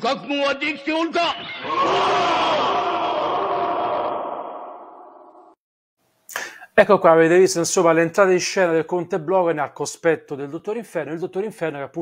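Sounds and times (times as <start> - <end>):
chorus of men shouting: 1.6 - 4.7.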